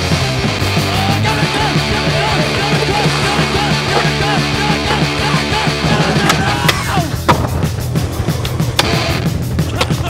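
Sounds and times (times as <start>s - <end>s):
loud backing music: 0.0s - 10.0s
skateboard wheels rolling: 0.1s - 10.0s
skateboard clacks: 1.3s - 10.0s.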